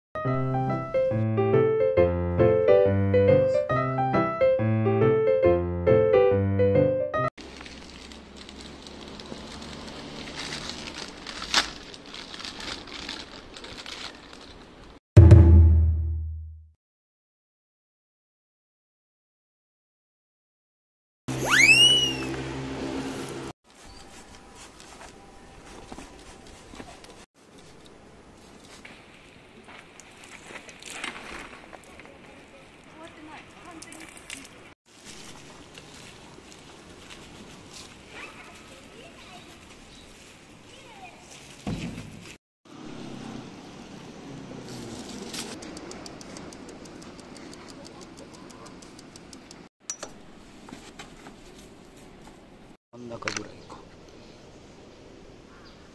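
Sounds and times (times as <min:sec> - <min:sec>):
upward sweeping whistle tone: 0:21.3 - 0:22.4
faint outdoor background: 0:21.3 - 0:55.9.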